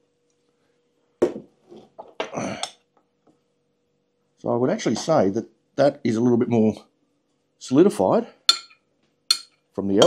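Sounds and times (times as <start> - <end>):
plastic jug knocking on wooden table: 1.2 - 1.5.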